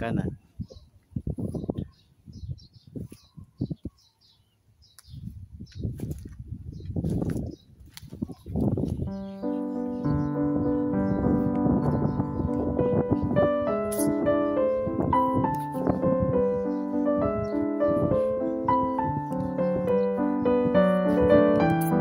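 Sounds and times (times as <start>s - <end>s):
small bird chirping: 0.4s - 22.0s
footsteps on grass: 5.1s - 10.4s
background piano music: 9.0s - 22.0s.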